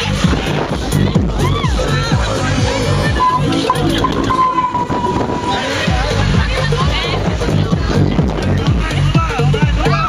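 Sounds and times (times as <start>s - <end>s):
swing ride rumble and rattle: 0.0s - 10.0s
steady high tone: 2.6s - 6.6s.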